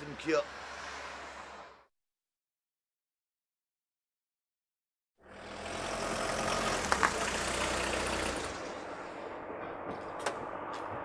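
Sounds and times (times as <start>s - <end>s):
vehicle engine running: 5.3s - 9.0s.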